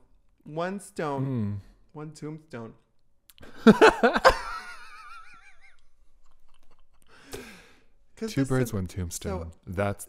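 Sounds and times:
person laughing: 3.4 - 7.1.

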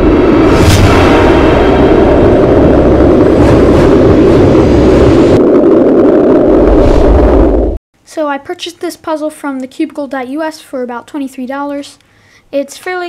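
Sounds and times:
brief whooshes: 0.0 - 5.0
rumbling roar sound effect: 0.0 - 7.8.

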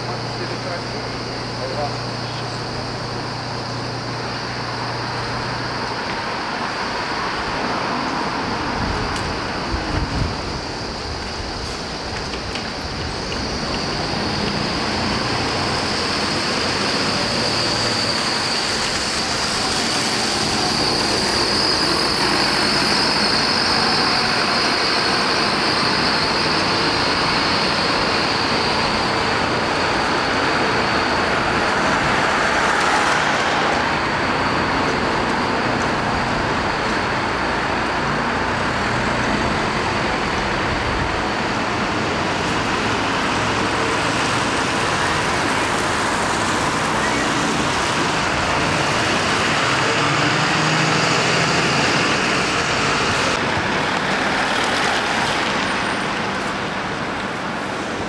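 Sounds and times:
traffic passing on wet road: 0.0 - 58.0.

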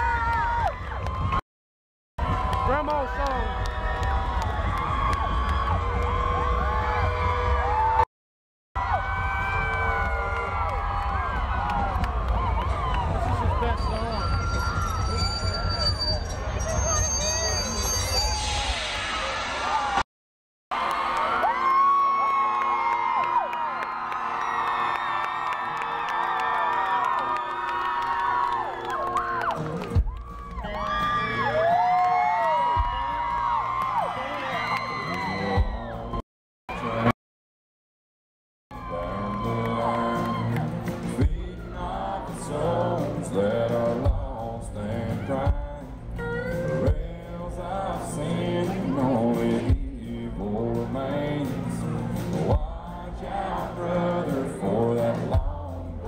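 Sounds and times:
crowd cheering: 0.0 - 1.4, 2.2 - 8.1, 8.8 - 20.0, 20.7 - 37.1, 38.7 - 44.2
high whoops and screams: 0.0 - 1.4, 2.3 - 8.0, 8.8 - 20.0, 20.8 - 36.2, 38.7 - 42.0
whoops and whistles: 13.8 - 19.3.

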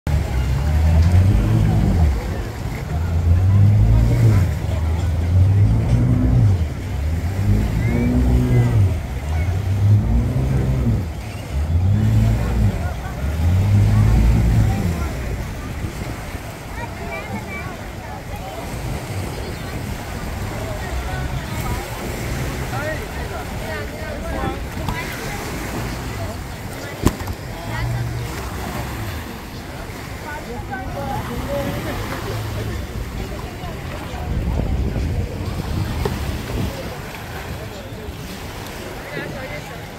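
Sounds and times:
beach crowd chatter: 0.0 - 39.9
light surf: 0.1 - 39.9
outboard motors droning: 0.1 - 39.9.

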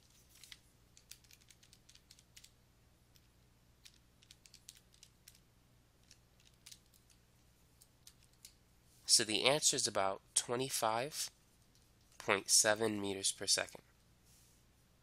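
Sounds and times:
low steady hum: 0.0 - 15.0
calculator keys clicking: 3.8 - 5.4.

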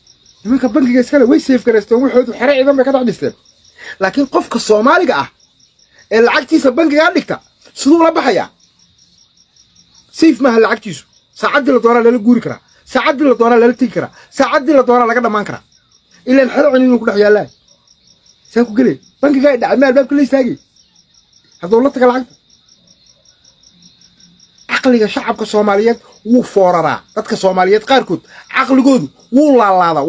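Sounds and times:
cricket chirping: 0.0 - 30.0
man speaking: 0.4 - 5.4, 6.0 - 8.6, 10.1 - 17.6, 18.5 - 20.6, 21.6 - 22.4, 24.7 - 30.0.

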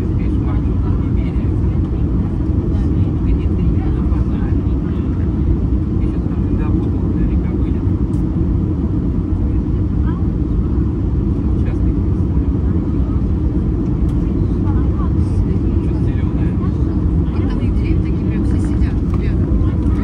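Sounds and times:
jet engine cabin rumble: 0.0 - 20.0.

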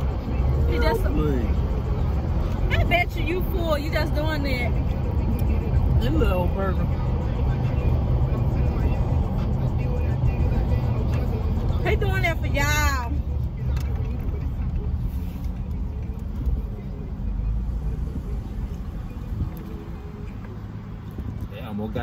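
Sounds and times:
car engine and road noise: 0.0 - 22.0.

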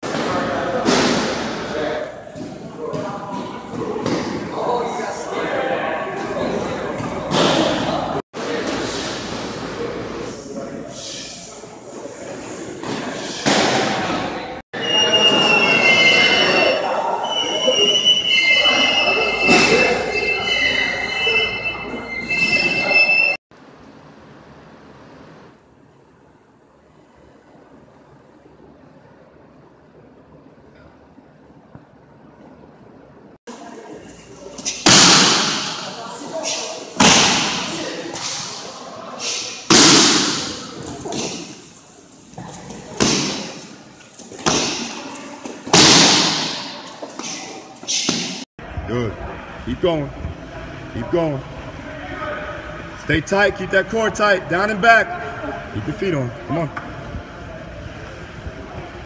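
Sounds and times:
steady high squeal: 14.8 - 23.4.

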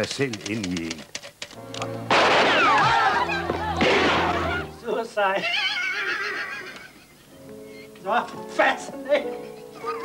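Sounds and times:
film soundtrack music: 0.6 - 5.0
gunfire: 2.1 - 3.0, 3.8 - 4.4
high wavering cry: 5.4 - 6.8.

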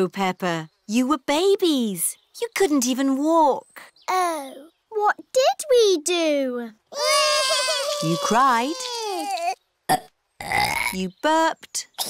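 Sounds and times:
cartoon babies crying: 6.9 - 9.6
short burp: 9.3 - 11.0.

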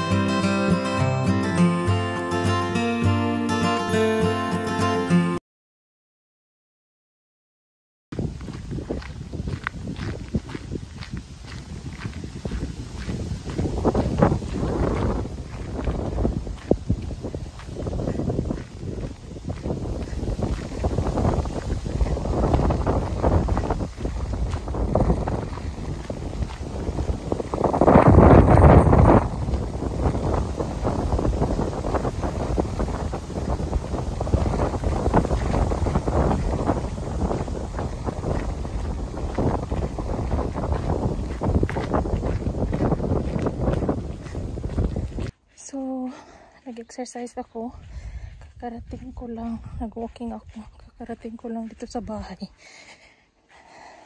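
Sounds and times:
wind buffeting microphone: 8.1 - 45.4, 46.1 - 54.0
footsteps on gravel: 8.2 - 54.0.

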